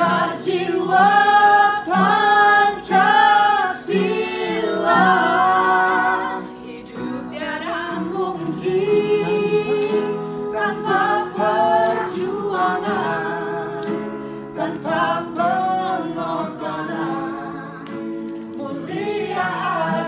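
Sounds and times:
acoustic guitar: 0.0 - 20.0
group singing together: 0.0 - 20.0
keyboard: 0.0 - 20.0.

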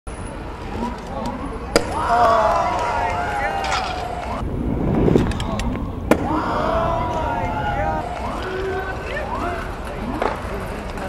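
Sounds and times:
scooter wheels rolling on concrete: 0.4 - 11.0.

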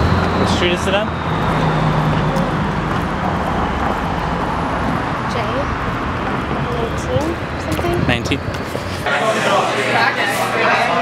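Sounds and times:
low traffic hum: 0.0 - 11.0
faint voices: 6.5 - 11.0.

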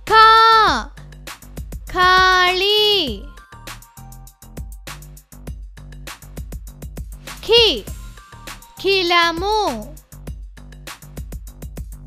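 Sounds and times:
child-like voice chanting: 0.0 - 0.9, 1.9 - 3.3, 7.4 - 7.9, 8.8 - 10.0
children's music with steady beat: 0.0 - 12.0.

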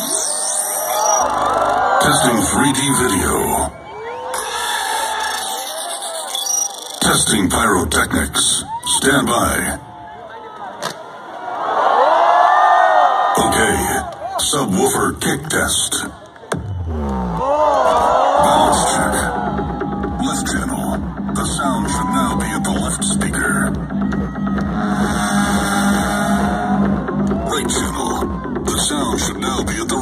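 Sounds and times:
large crowd cheering: 0.0 - 7.0, 8.4 - 30.0
electronic dance music: 0.0 - 8.8, 14.9 - 30.0.

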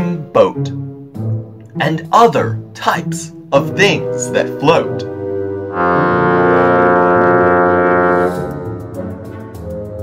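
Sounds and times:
quiet background music: 0.0 - 10.0
long low horn note: 5.1 - 9.3.

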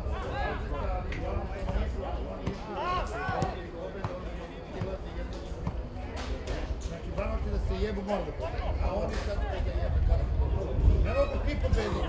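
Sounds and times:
players shouting: 0.0 - 4.9.

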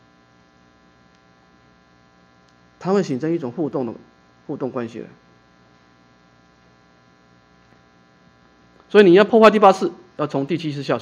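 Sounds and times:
faint mains hum: 0.0 - 11.0
man speaking: 2.8 - 5.2, 8.9 - 11.0.

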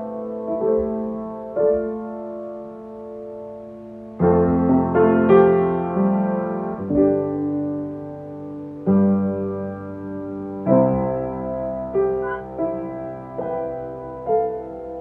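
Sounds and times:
slow piano chords: 0.0 - 15.0.

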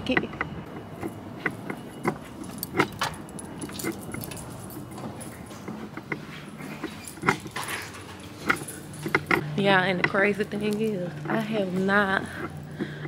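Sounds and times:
footsteps and handling clatter: 0.0 - 13.0
low steady hum: 0.0 - 13.0.

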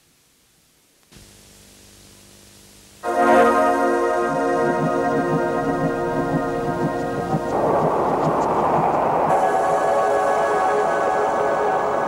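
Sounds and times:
electronic title music: 3.2 - 11.8.

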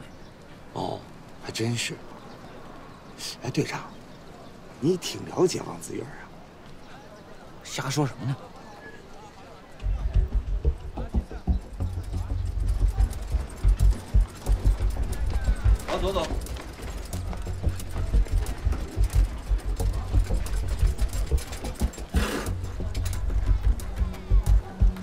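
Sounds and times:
street bustle clicks and knocks: 0.0 - 25.0
pulsing low drum: 9.8 - 25.0.

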